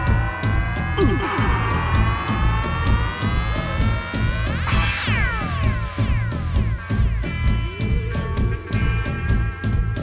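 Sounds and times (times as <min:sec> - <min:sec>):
held tone rising in pitch: 0:00.0 - 0:08.7
bass guitar: 0:00.0 - 0:10.0
drum beats: 0:00.0 - 0:10.0.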